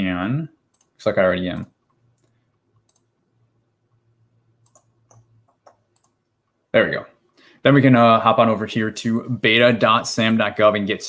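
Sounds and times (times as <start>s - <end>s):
computer mouse clicks: 0.7s - 1.0s, 1.8s - 3.1s, 4.6s - 6.3s.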